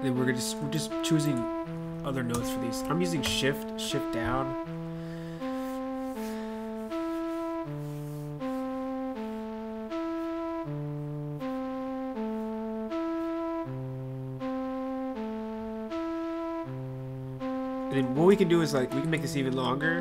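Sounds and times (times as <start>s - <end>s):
synthesized flute melody: 0.0s - 20.0s.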